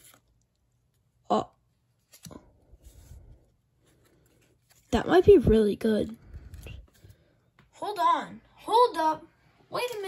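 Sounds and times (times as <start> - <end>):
trading cards rustling in hands: 0.0 - 7.6.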